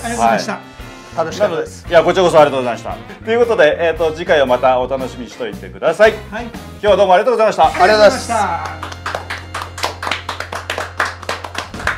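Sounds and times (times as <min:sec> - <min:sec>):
people clapping: 0:08.0 - 0:11.9.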